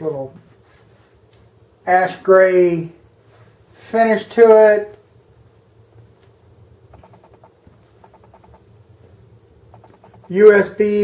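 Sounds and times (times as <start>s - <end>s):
low hum: 5.1s - 10.5s
small animal chirping trills: 6.9s - 8.7s, 9.7s - 10.3s.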